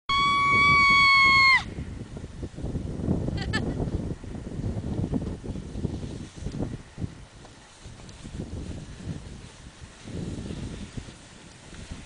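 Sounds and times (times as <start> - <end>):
wind rumbling on microphone: 0.1 - 12.0.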